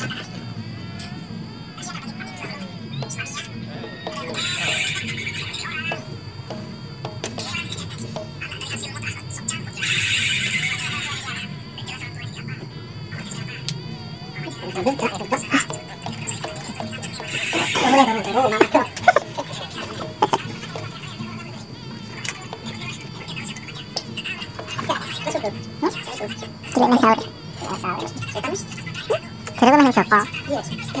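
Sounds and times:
music with singing: 0.0s - 31.0s.

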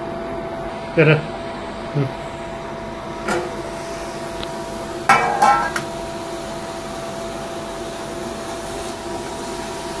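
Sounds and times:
cooling fan humming with whine: 0.0s - 10.0s.

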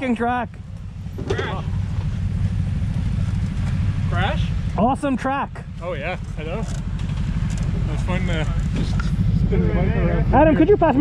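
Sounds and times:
motorcycle engine idling: 0.0s - 11.0s.

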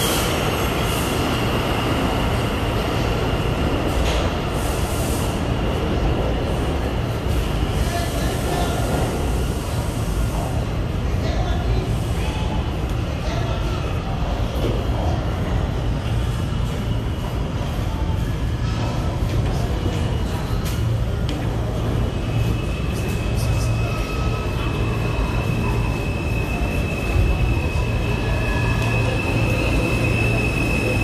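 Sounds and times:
subway train rumble: 0.0s - 31.0s
high steady squeal: 22.2s - 31.0s.

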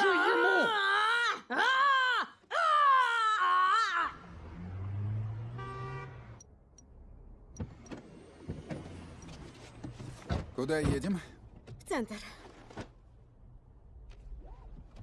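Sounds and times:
woman yelling in rage: 0.0s - 4.1s
city traffic: 3.0s - 14.4s
car horn toot: 5.4s - 6.4s.

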